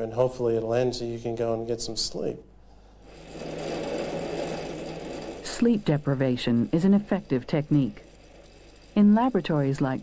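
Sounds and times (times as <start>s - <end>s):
low hum: 2.6s - 10.0s
chart recorder mechanical chatter: 3.0s - 10.0s.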